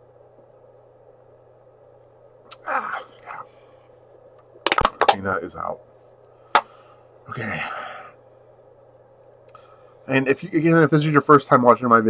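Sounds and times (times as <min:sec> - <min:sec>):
drink can being crushed: 0:04.7 - 0:05.2.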